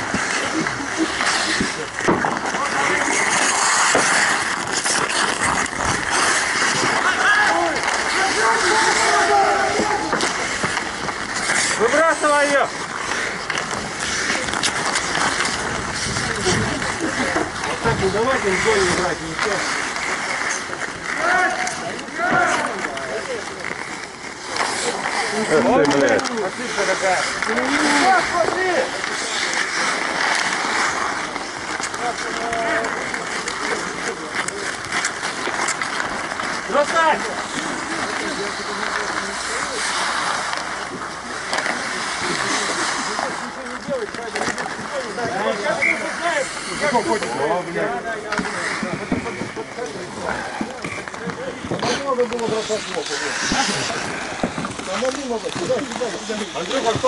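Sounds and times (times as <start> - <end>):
skates scraping on ice: 0.0 - 57.0
players shouting: 6.0 - 10.7, 20.4 - 23.6.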